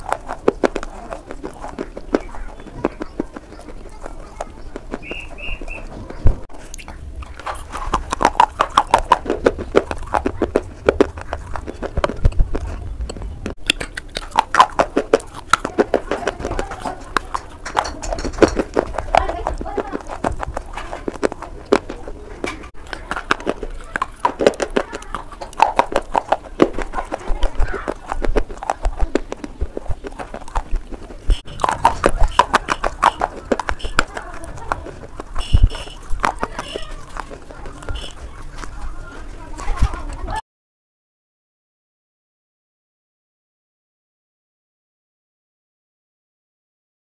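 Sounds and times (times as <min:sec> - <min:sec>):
crunching and chewing clay: 0:00.0 - 0:40.4.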